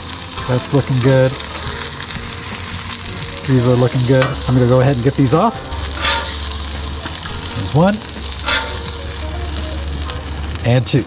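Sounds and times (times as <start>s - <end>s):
patties sizzling on griddle: 0.0s - 11.0s
metal spatula scraping griddle: 0.3s - 10.7s.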